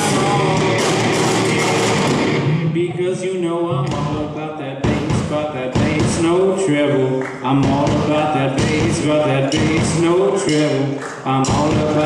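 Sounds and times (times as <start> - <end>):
man singing into microphone: 0.0 - 1.8, 2.5 - 12.0
sparse guitar and drums: 0.0 - 6.7, 7.5 - 12.0
sharp drum hits: 0.6 - 2.4.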